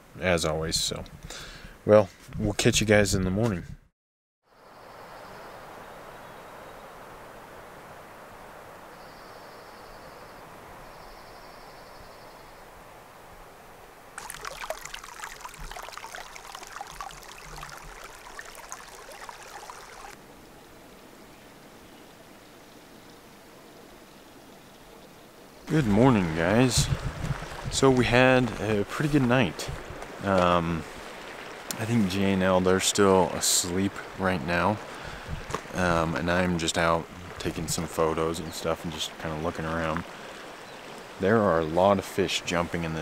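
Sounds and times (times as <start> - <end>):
soft outdoor hiss: 0.0 - 3.6, 4.5 - 43.0
brook splashing over rocks: 14.2 - 20.2, 25.7 - 29.1, 29.7 - 31.9.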